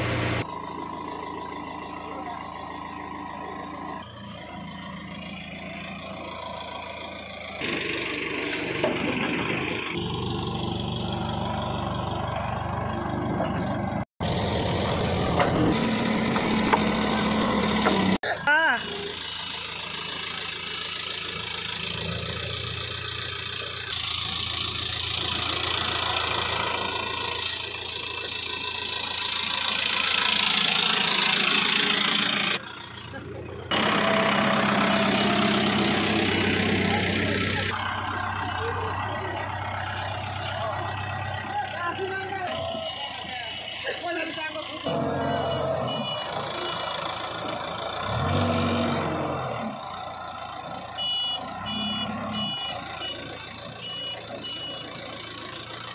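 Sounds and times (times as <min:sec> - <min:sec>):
diesel engine running: 0:00.0 - 0:55.9.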